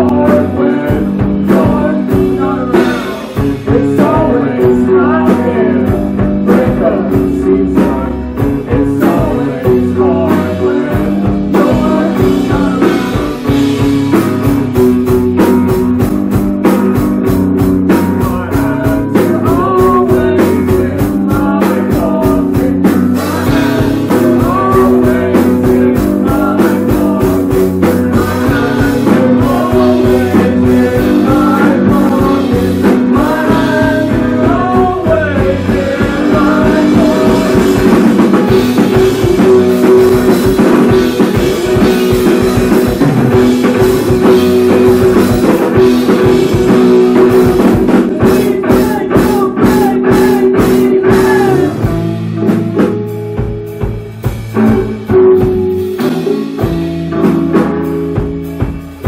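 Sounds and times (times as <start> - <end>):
person singing lead vocals: 0.0 - 52.9
bass guitar: 0.0 - 59.0
drum kit: 0.0 - 59.0
electric guitar: 0.0 - 59.0.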